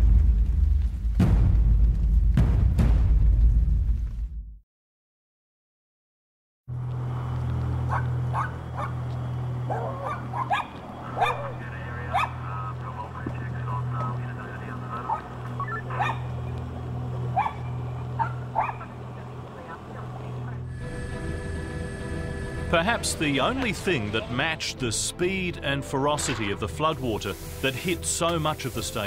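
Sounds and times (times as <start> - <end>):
music: 0.0 - 4.5, 11.5 - 29.0
low machine hum: 6.7 - 24.2
dog barking: 7.9 - 9.0, 9.7 - 12.4, 15.8 - 16.3, 17.3 - 19.0.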